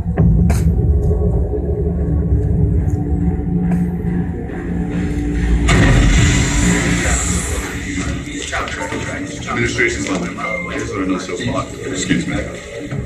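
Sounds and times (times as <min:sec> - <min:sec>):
tense film score: 0:00.0 - 0:13.0
rushing noise: 0:04.3 - 0:13.0.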